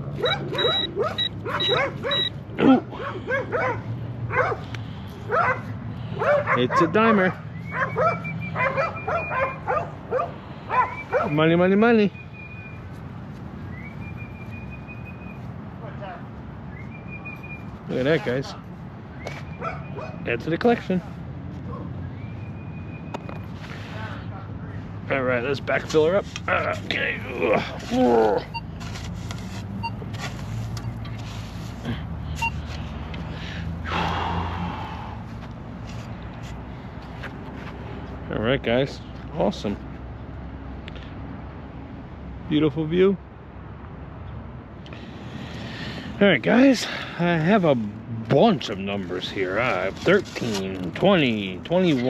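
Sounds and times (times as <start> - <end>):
dog whimpering: 0.2 - 3.7
shovel scraping sandy dirt: 49.5 - 50.8.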